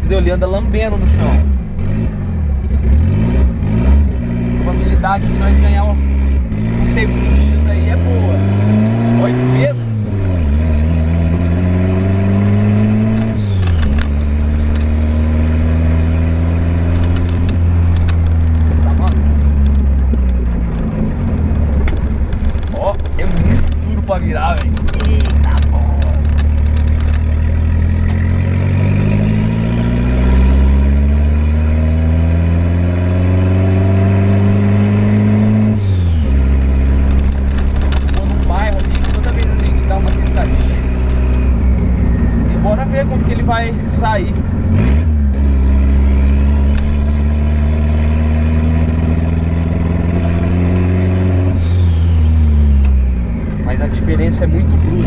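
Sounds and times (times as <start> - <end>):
car engine accelerating: 0.0 - 55.0.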